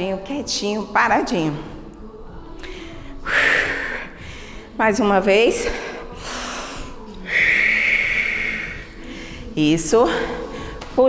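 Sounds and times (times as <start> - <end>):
woman breathing deeply: 2.6 - 4.8, 5.6 - 10.8.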